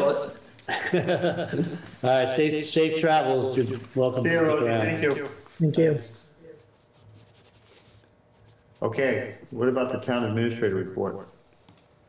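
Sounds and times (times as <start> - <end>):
pen scratching on paper: 6.6 - 8.8.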